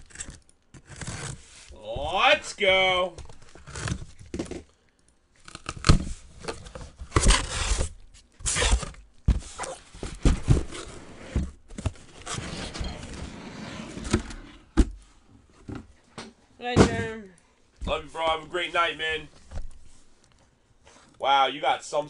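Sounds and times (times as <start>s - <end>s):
packaging rustling and tearing: 3.2s - 4.8s, 5.4s - 11.0s.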